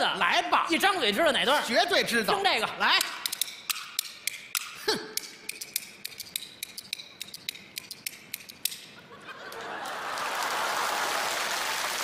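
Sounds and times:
bamboo clappers clacking: 2.8s - 9.0s.

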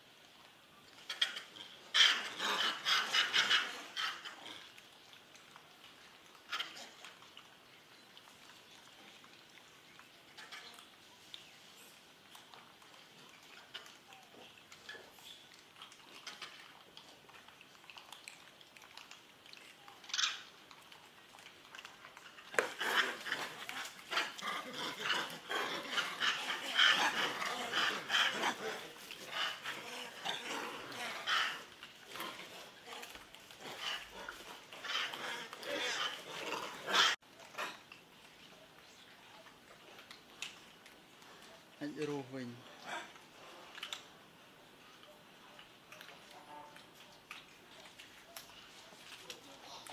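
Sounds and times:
animal calls: 1.1s - 4.8s, 22.1s - 37.8s.

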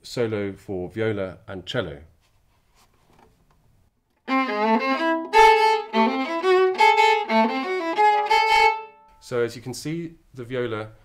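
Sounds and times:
bowed viola melody: 4.2s - 9.2s.

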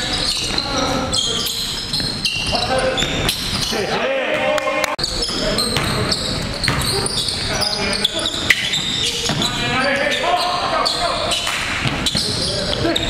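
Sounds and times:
voices calling out: 0.0s - 13.0s.

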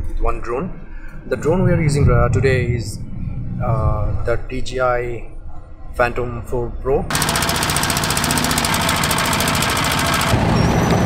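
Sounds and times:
deep steady rumble: 0.0s - 7.3s
diesel boat engine knocking: 7.1s - 11.0s.

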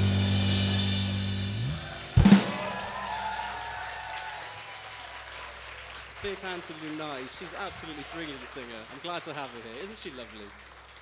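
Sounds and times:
drum kit hit with cymbal crash: 0.0s - 3.0s.

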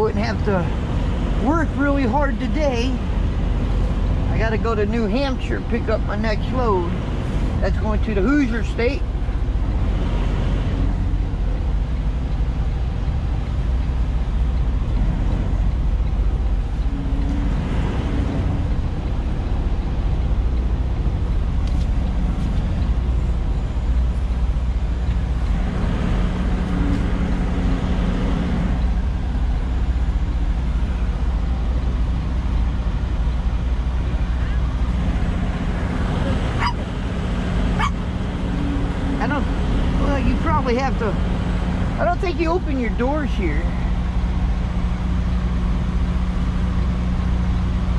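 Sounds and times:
truck diesel engine running: 0.0s - 47.9s.

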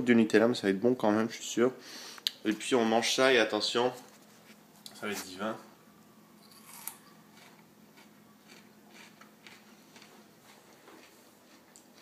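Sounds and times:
faint crunching chews: 6.4s - 12.0s
teeth crunching bell pepper: 6.4s - 12.0s.

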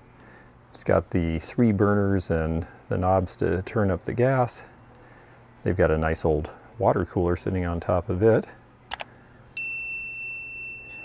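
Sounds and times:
bright bell ding: 9.6s - 11.0s.

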